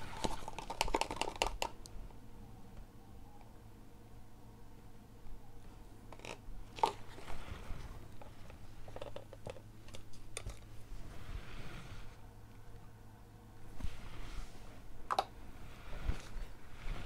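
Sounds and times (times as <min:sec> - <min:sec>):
plastic cups and tools clicking: 0:00.0 - 0:01.9, 0:06.1 - 0:07.3, 0:08.2 - 0:10.7
soft rustling: 0:13.6 - 0:15.0.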